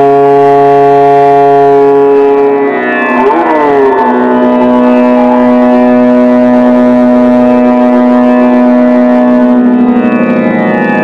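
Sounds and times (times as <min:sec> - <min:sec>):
violin holding a long note: 0:00.0 - 0:11.0.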